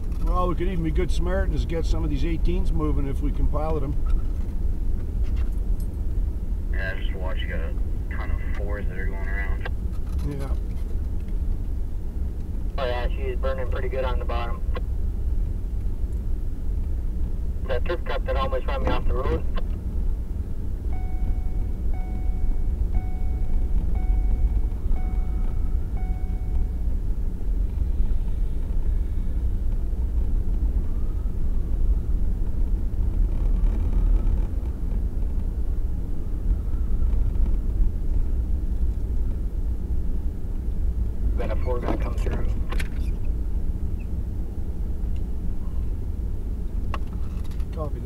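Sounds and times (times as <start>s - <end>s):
tyres on snowy road: 0.0s - 48.0s
vehicle engine rumble: 0.0s - 48.0s
beeps: 20.9s - 26.9s.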